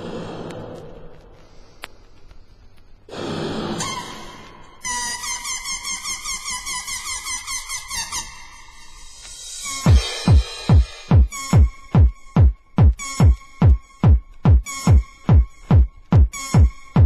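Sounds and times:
breathy blowing sounds: 0.0 - 4.9
squeaky rubbery pulsing sound: 3.4 - 17.0.

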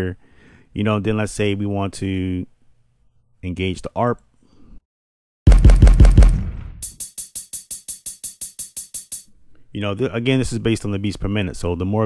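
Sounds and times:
fast drum machine roll: 5.5 - 9.2
closed hi-hat roll: 6.8 - 9.3.

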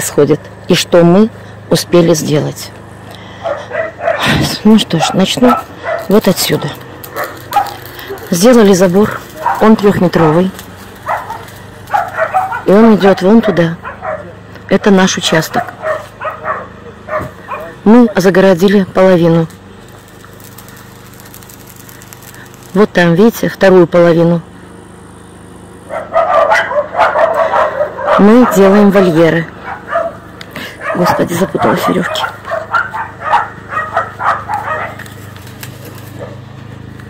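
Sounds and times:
steady low hum: 0.0 - 37.0
dogs barking and yipping: 3.3 - 14.5, 15.1 - 17.8, 25.9 - 36.9.

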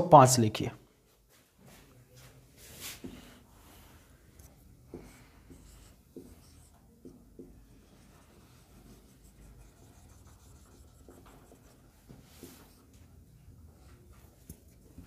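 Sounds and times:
marker writing on whiteboard: 2.8 - 15.0
low room hum: 3.3 - 15.0.

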